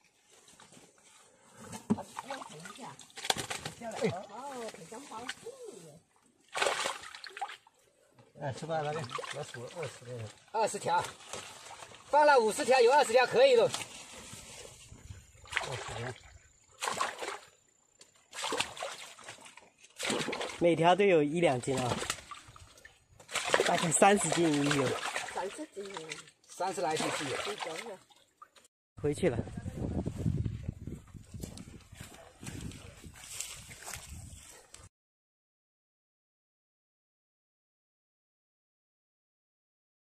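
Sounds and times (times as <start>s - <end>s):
water splashing in basket: 2.0s - 4.1s, 6.5s - 7.7s, 8.8s - 12.1s, 15.4s - 16.2s, 16.8s - 17.6s, 18.3s - 20.6s, 21.6s - 28.6s
footsteps on dirt path: 30.3s - 34.9s.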